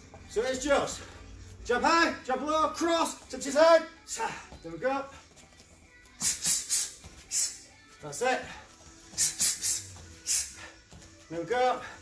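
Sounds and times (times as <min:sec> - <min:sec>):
sharp hissing bursts: 0:06.2 - 0:07.6, 0:09.2 - 0:10.6.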